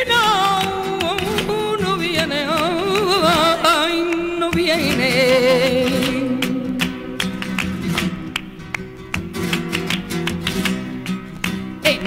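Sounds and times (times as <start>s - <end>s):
flamenco guitar strumming: 0.0s - 12.0s.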